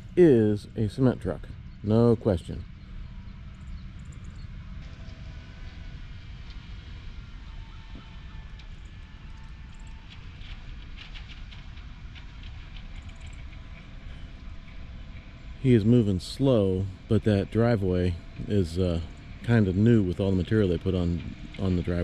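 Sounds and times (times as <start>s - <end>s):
distant concrete mixer truck running: 0.0s - 22.0s.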